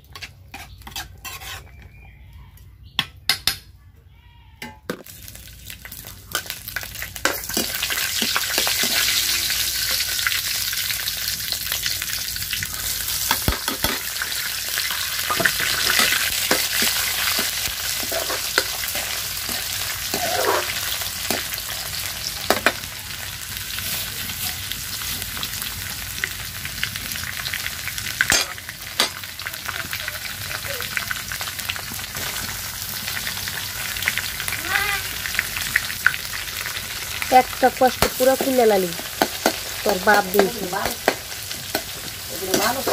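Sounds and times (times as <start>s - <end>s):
ladle scraping and clinking pan: 0.1s - 1.8s, 15.3s - 21.4s
food sizzling in hot oil: 5.0s - 42.9s.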